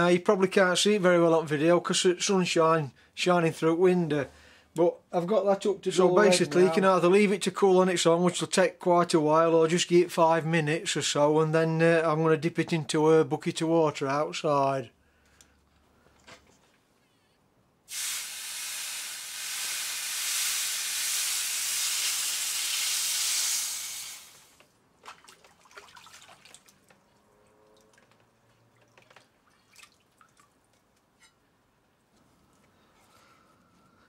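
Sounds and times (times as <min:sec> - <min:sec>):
hot metal hissing in water: 0:17.9 - 0:24.6
water drips and clicks: 0:24.6 - 0:31.1.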